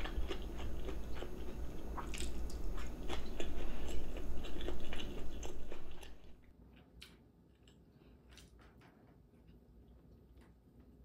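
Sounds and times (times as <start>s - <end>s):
person chewing food: 0.0s - 9.6s.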